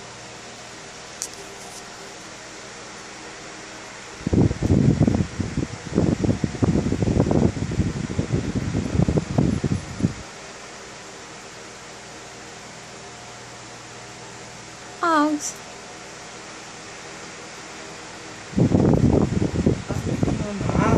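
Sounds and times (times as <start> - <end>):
faint room hum: 0.0 - 20.9
wind buffeting microphone: 4.2 - 10.2, 18.5 - 20.9.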